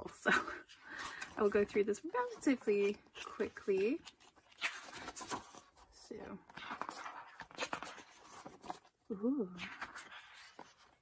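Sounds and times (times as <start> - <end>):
glossy pages turning: 0.0 - 9.0, 9.6 - 11.0.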